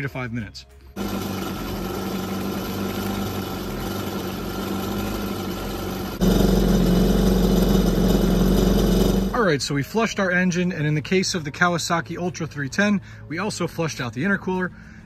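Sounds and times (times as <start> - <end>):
jet ski engine idling: 1.0 - 9.4.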